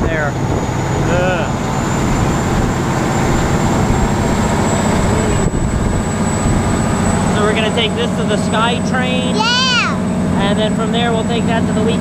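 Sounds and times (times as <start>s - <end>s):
boat engines rumbling: 0.0s - 12.0s.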